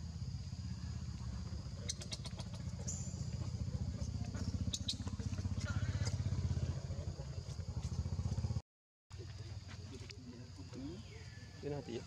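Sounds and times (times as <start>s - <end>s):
high insect drone: 0.0s - 8.6s
engine idling: 0.1s - 8.6s.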